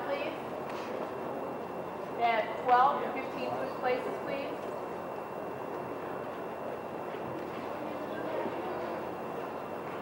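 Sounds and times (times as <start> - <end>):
faint indistinct voices: 0.0 - 10.0
large hall background noise: 0.0 - 10.0.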